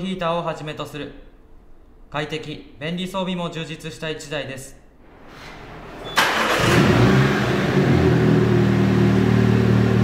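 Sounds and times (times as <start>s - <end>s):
car engine starting and idling: 5.4s - 10.0s.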